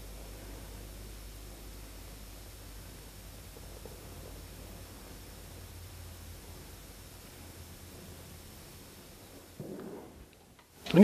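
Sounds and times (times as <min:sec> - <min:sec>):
low hum: 0:00.0 - 0:11.0
torch flame hissing: 0:00.0 - 0:11.0
muffled thud: 0:09.6 - 0:10.3.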